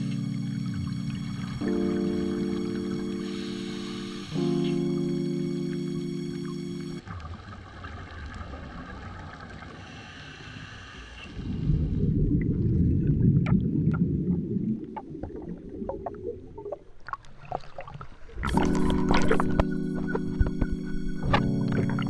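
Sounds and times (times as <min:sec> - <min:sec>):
underwater exhaust bubbles: 0:11.4 - 0:22.0
clicks: 0:18.5 - 0:22.0.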